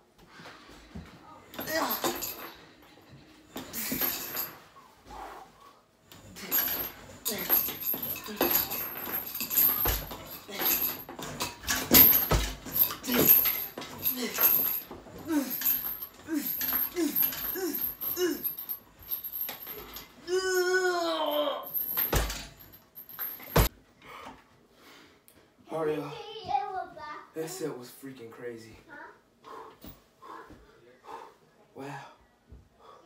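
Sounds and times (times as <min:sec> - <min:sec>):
man grunting: 0:01.6 - 0:02.4, 0:06.3 - 0:09.0, 0:10.4 - 0:11.0, 0:13.0 - 0:18.7, 0:20.2 - 0:21.8
man breathing hard: 0:29.4 - 0:33.0.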